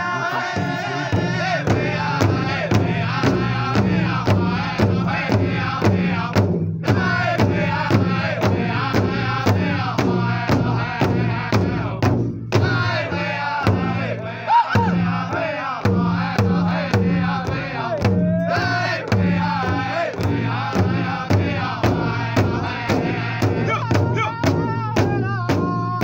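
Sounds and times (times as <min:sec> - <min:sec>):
large drum steady beat: 0:00.0 - 0:26.0
voices chanting: 0:00.0 - 0:26.0.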